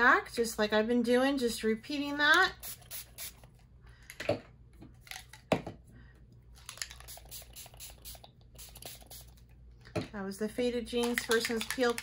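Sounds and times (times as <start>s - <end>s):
spray bottle spritzing: 2.6s - 3.4s, 6.7s - 9.4s.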